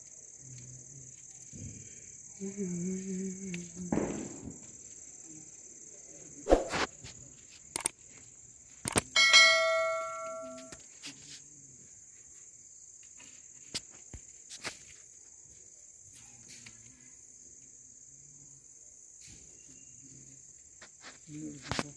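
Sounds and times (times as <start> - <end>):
crickets chirping: 0.0 - 21.9
small metal bell ringing: 9.1 - 10.8.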